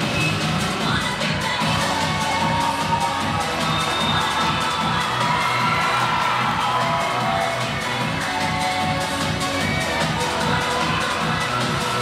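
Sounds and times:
crowd cheering and shouting: 0.0s - 12.0s
upbeat dance music: 0.0s - 12.0s.

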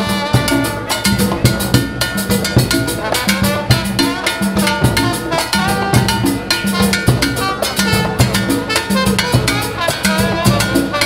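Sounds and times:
brass band playing: 0.0s - 11.0s
bass drum thumps: 0.1s - 11.0s.

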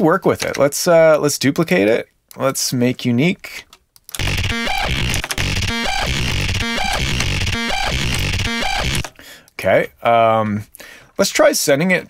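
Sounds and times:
distorted gritty bass wub: 4.2s - 9.1s.

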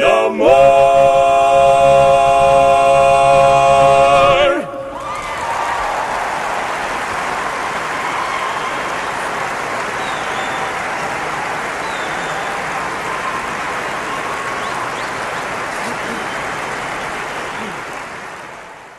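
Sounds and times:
people cheering: 0.0s - 18.9s
audience applauding: 4.9s - 18.9s
short whistles: 10.0s - 10.9s, 11.8s - 12.7s.

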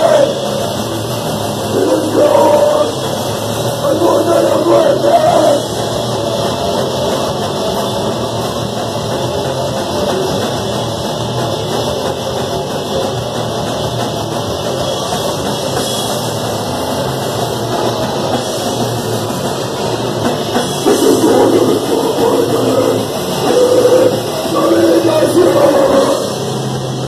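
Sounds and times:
punk band playing live: 0.0s - 27.0s.

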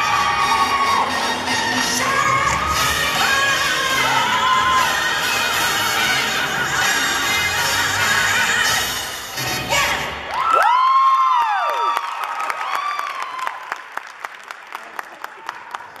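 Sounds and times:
audience cheering and whooping: 0.0s - 2.6s, 3.2s - 5.3s, 10.2s - 14.0s
stage dance music: 0.0s - 11.7s.

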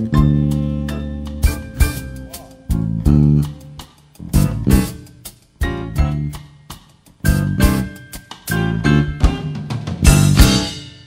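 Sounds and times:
band playing ensemble hits: 0.0s - 11.0s.

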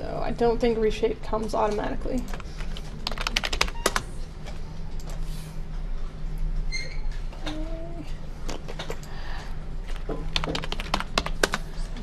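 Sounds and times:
keyboard typing: 2.2s - 4.2s, 9.9s - 11.8s.

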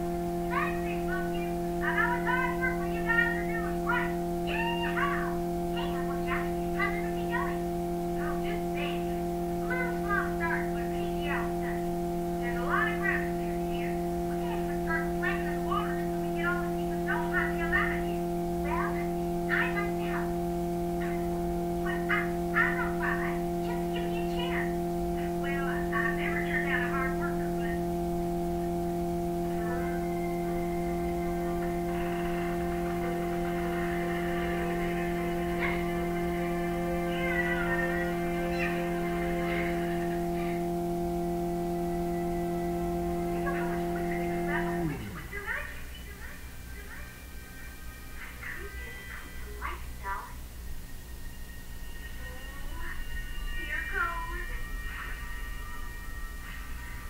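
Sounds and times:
background music: 26.3s - 45.4s.

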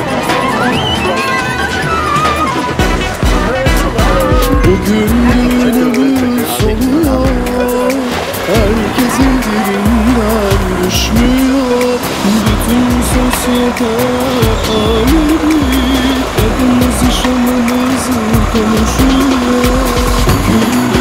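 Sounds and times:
ornamented lead melody: 0.0s - 21.0s
deep pounding bass beat: 2.0s - 21.0s.

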